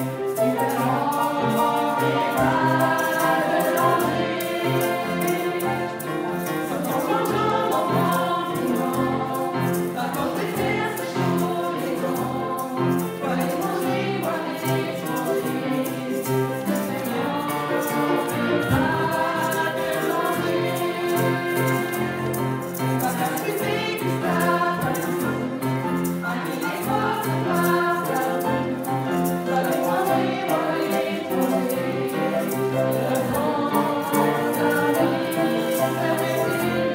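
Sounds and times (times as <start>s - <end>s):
grand piano: 0.0s - 36.9s
people singing into microphones: 0.0s - 36.9s
violins: 0.0s - 36.9s.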